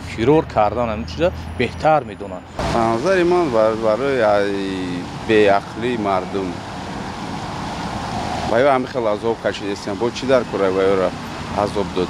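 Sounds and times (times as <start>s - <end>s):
men talking: 0.0s - 6.8s, 8.5s - 12.0s
low traffic rumble: 0.0s - 12.0s.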